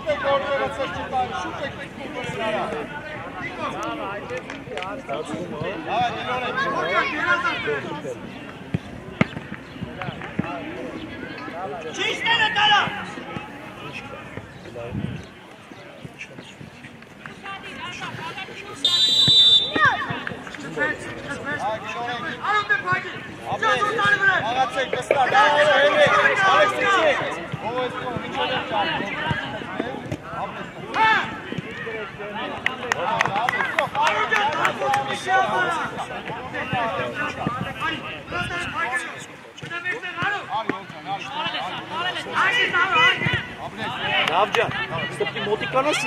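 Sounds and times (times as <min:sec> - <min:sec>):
voices calling out outdoors: 0:00.0 - 0:46.0.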